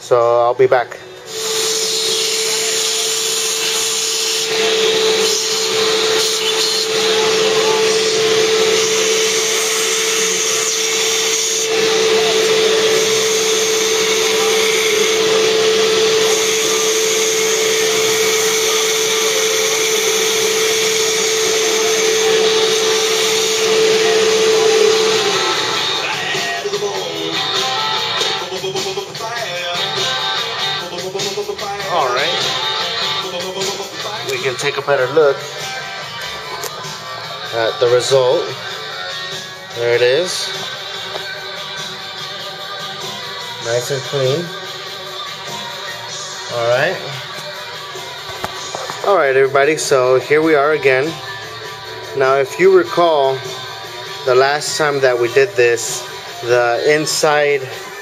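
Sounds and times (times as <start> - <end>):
electric drill cutting steel: 1.2 - 58.0.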